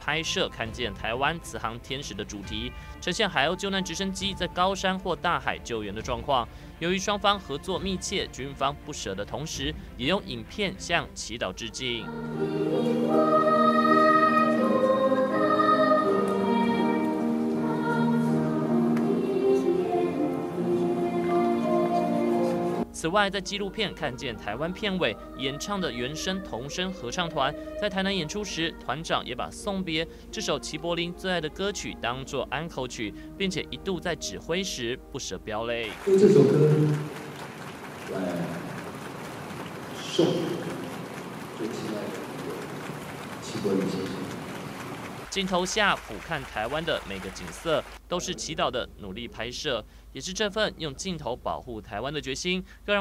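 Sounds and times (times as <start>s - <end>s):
man speaking through a microphone: 0.0s - 12.1s, 23.0s - 37.2s, 38.1s - 38.8s, 40.0s - 40.9s, 41.6s - 42.8s, 43.4s - 44.3s, 45.3s - 53.0s
children's choir singing: 11.6s - 22.8s, 23.8s - 29.1s, 35.9s - 37.3s, 40.0s - 42.7s, 43.5s - 44.3s
hall ambience hiss: 35.8s - 53.0s.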